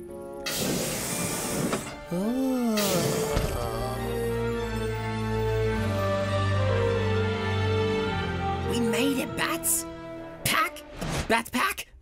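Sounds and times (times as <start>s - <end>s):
loud even rushing hiss: 0.5s - 2.0s.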